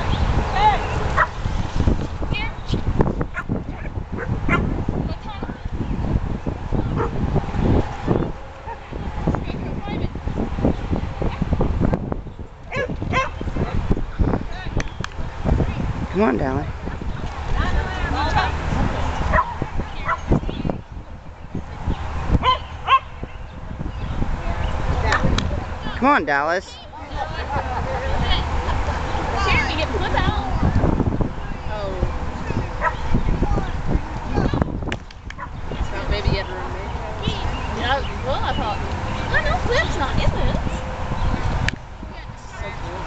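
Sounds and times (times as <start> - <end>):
dog barking: 3.3 - 4.7, 12.7 - 13.4, 22.4 - 23.1, 32.8 - 33.1
dog barking in sharp yips: 22.4 - 23.1.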